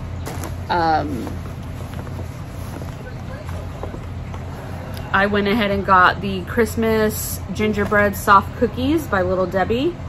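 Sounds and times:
shopping bag rustling: 0.0 - 5.0
low steady hum: 0.0 - 10.0.

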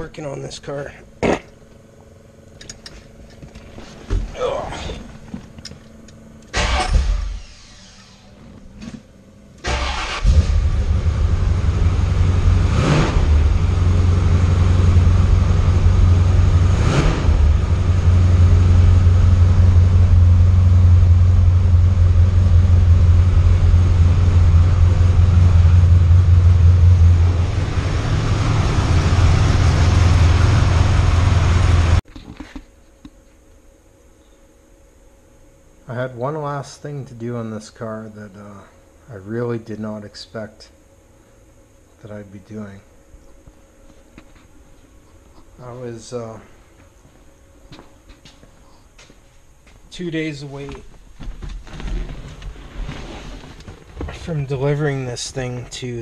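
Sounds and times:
car engine starting and rumbling: 6.4 - 9.0, 9.6 - 32.0
engine revving blips: 9.6 - 32.0.

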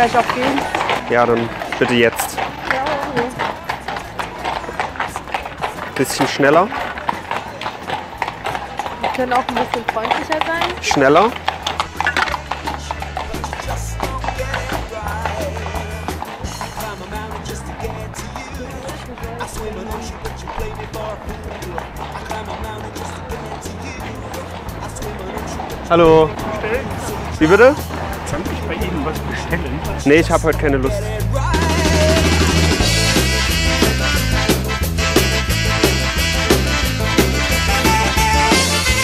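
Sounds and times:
sharp clopping knocks: 0.0 - 33.4
music with quick beat and bass: 11.8 - 39.0
person speaking: 25.2 - 31.6.

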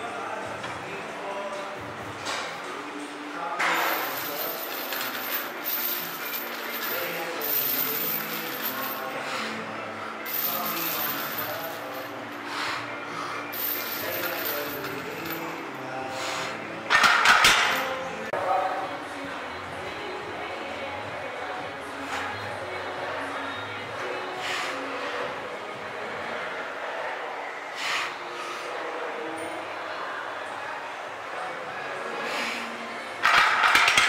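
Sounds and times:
chain links and weight plates clanking: 3.7 - 9.1, 10.3 - 12.1, 13.6 - 15.5.

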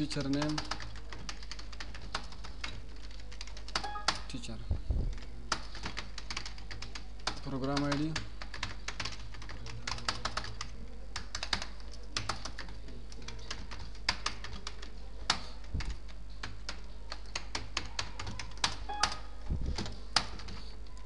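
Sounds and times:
computer keyboard typing: 0.0 - 4.4, 5.1 - 21.0
steady low hum: 19.2 - 21.0.

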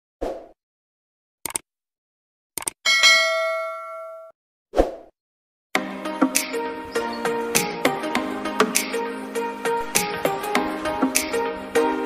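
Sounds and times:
bell ding: 2.9 - 4.3.

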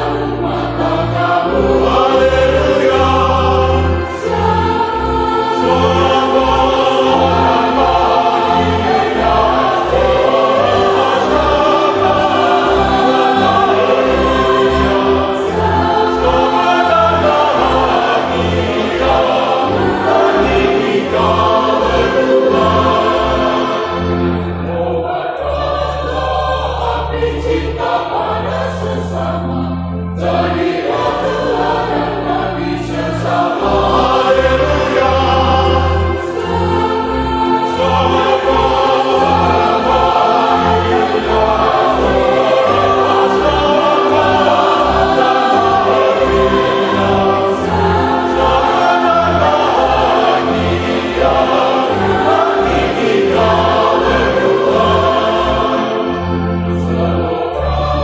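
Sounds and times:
choir with instrumental accompaniment: 0.0 - 58.0.

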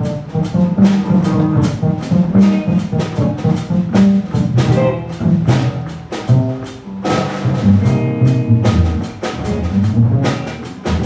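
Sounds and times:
bass notes: 0.0 - 11.0
drum and cymbal hits: 0.0 - 11.0
electric guitar: 0.0 - 11.0.

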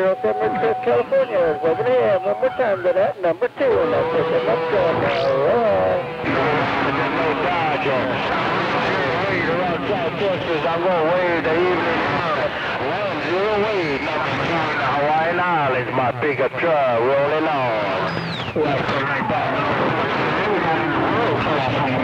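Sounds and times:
radio carrier whistle: 0.0 - 3.0, 3.8 - 9.5, 18.0 - 18.6
garbled radio voices: 0.0 - 22.0.

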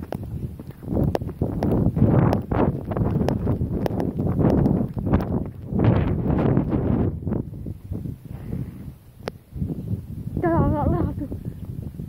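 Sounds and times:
footsteps running on paving: 0.0 - 7.2
wind buffeting microphone: 0.0 - 12.0.

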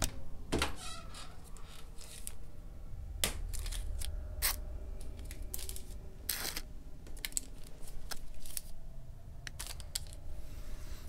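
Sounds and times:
low steady hum: 0.0 - 11.0
paper wrapper tearing: 5.3 - 8.8, 9.5 - 10.2.

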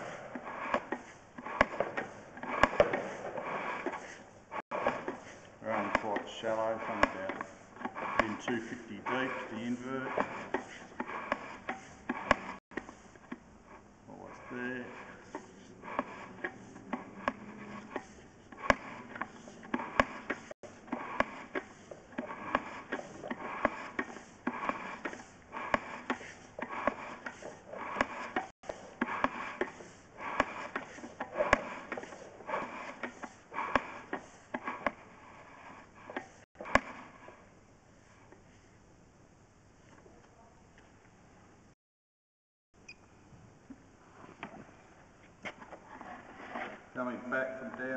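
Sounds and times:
rod scraping in pipe with clicks: 0.0 - 13.4, 14.6 - 37.0.

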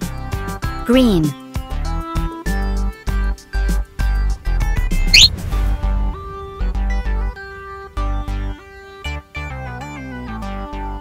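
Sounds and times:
rising whistle sound effect: 5.1 - 5.3.

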